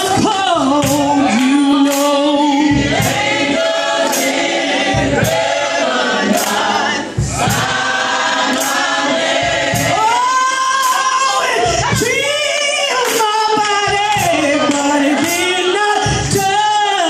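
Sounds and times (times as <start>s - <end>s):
woman singing into microphone: 0.0s - 3.6s, 9.8s - 17.0s
group singing gospel song: 0.0s - 17.0s
sharp claps: 0.8s - 2.2s, 4.0s - 4.6s, 6.3s - 6.7s, 8.5s - 9.0s, 13.0s - 15.5s.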